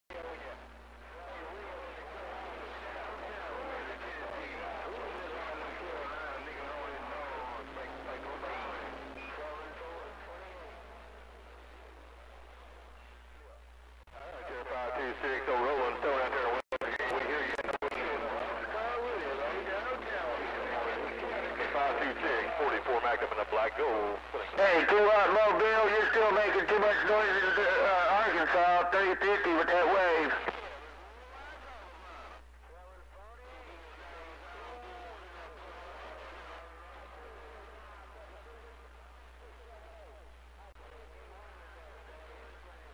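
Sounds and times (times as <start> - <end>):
steady low hum: 0.1 - 42.9
voices over radio receiver: 0.1 - 42.9.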